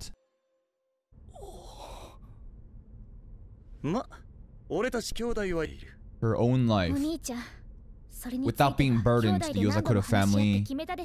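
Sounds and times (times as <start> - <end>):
low steady hum: 1.2 - 10.9
breathy sigh: 1.3 - 2.4.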